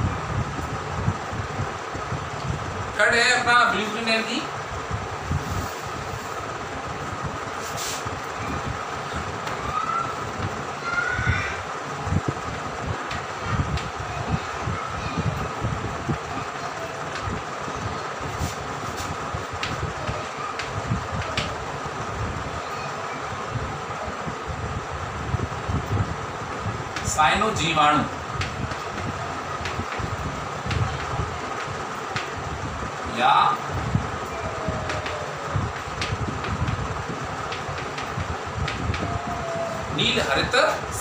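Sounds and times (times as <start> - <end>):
background hum with low rumble: 0.0 - 41.0
chalk scratching on blackboard: 18.3 - 19.1.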